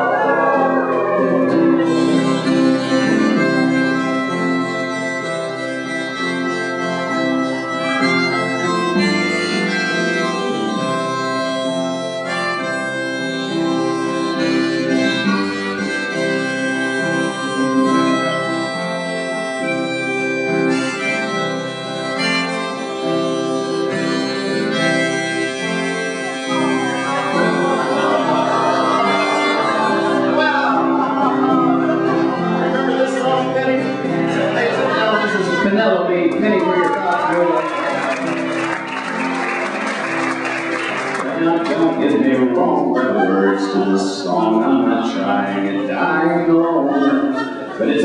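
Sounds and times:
folk instrumental music: 0.0s - 48.0s.

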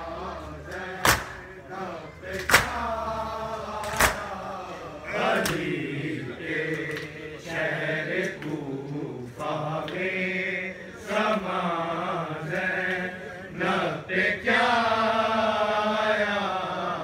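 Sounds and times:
men chanting lament: 0.0s - 17.0s
hands slapping chests: 0.7s - 1.4s, 2.3s - 2.8s, 3.8s - 4.3s, 5.4s - 5.7s.

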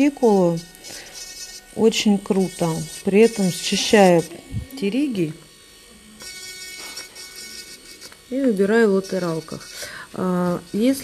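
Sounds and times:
high whine of nail drill: 0.0s - 11.0s.

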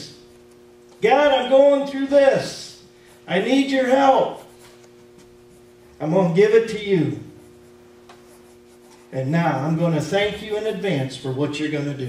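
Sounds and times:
steady low hum: 0.0s - 12.0s
man speaking: 1.0s - 4.5s, 6.0s - 7.4s, 9.1s - 12.0s.

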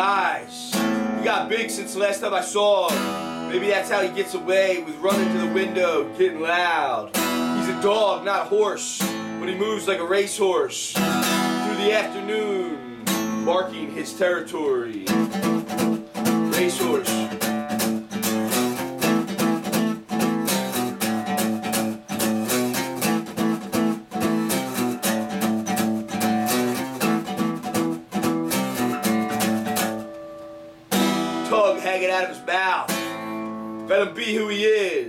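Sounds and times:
acoustic guitar strumming: 0.0s - 35.0s.

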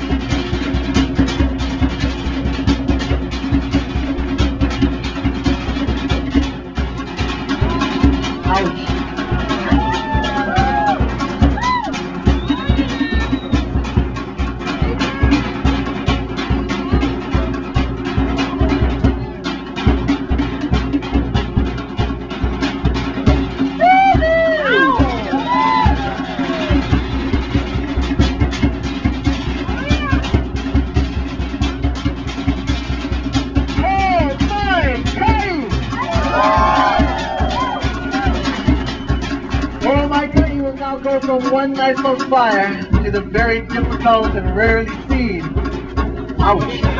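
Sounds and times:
fast drumming with music: 0.0s - 46.9s
high whooping calls: 7.5s - 14.0s, 23.7s - 27.9s, 35.7s - 40.3s.

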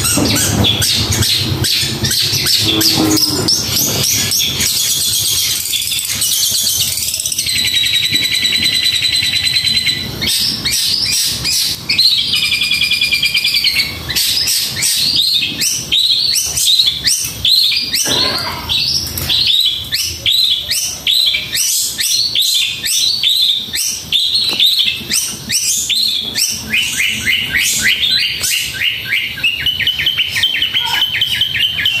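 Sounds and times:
shrike singing rapid trills: 0.0s - 32.0s.

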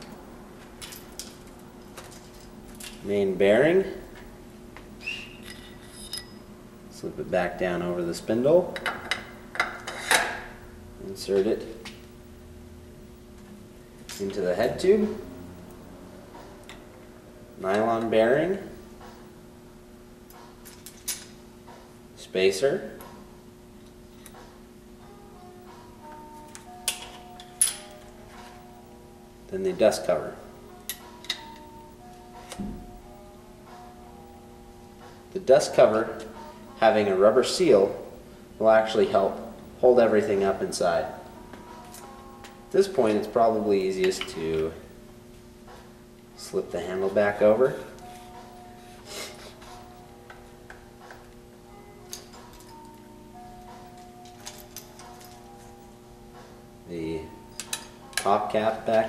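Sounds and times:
faint background music: 0.0s - 59.0s.

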